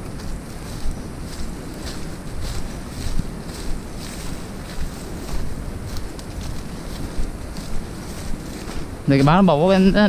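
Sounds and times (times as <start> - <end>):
brushing through undergrowth: 0.0 - 10.0
footsteps crunching dry leaves: 0.0 - 10.0
wind buffeting microphone: 0.0 - 10.0.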